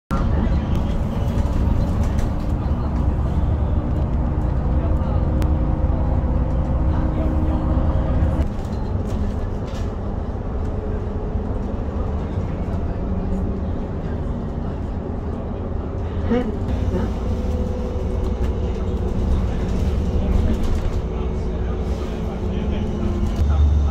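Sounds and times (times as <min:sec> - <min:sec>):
bus engine and road rumble: 0:00.1 - 0:23.9
engine drone: 0:00.1 - 0:23.9.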